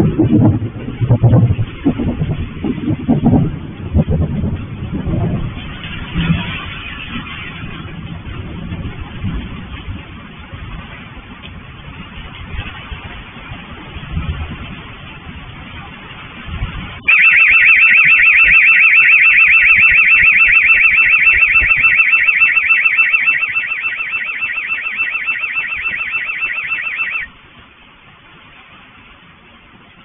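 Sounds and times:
scooter alarm warbling: 0:17.1 - 0:27.3.

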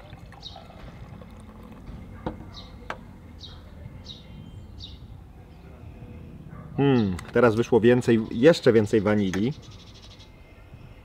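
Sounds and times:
beer pouring into a glass: 0:00.0 - 0:02.2
bird chirping: 0:00.3 - 0:00.8, 0:01.9 - 0:11.0.

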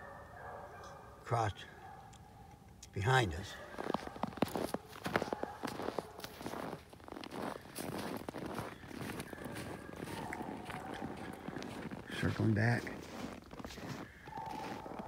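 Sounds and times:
footsteps crunching on snow: 0:03.2 - 0:15.0.

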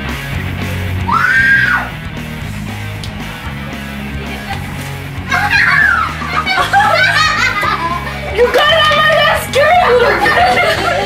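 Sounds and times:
rock music: 0:00.0 - 0:11.0
high rising and falling shriek: 0:01.0 - 0:02.0
women screaming and laughing: 0:01.1 - 0:02.0, 0:04.2 - 0:11.0.

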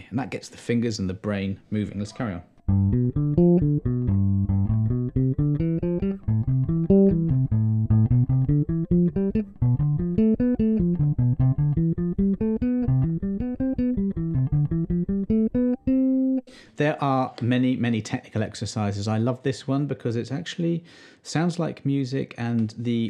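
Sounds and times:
electric bass arpeggios: 0:02.6 - 0:16.5.

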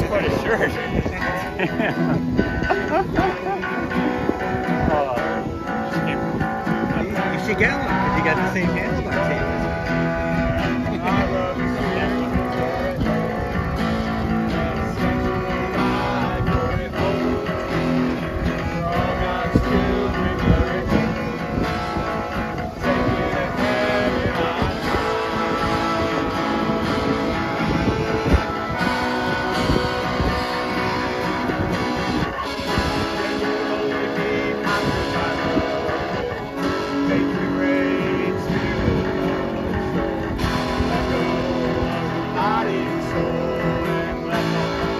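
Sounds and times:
accordion: 0:00.0 - 0:44.9
acoustic guitar strumming: 0:00.0 - 0:44.9
electric guitar: 0:00.0 - 0:44.9
person singing: 0:07.1 - 0:44.9.

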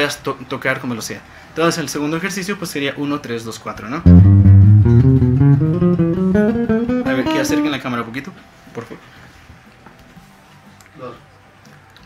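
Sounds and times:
electric guitar single notes: 0:04.1 - 0:07.8.

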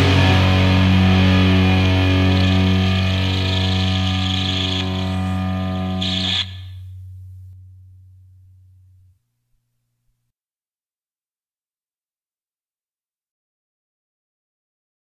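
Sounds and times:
distorted electric guitar chord: 0:00.0 - 0:09.2.

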